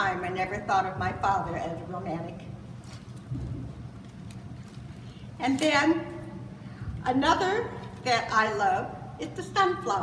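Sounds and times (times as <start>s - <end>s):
low room hum: 0.0s - 10.0s
book handling rustle: 2.8s - 5.7s.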